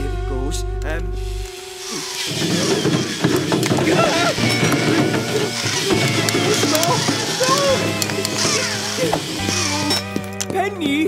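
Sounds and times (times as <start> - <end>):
background music: 0.0 - 11.0
power drill clicking and rattling: 1.8 - 10.5.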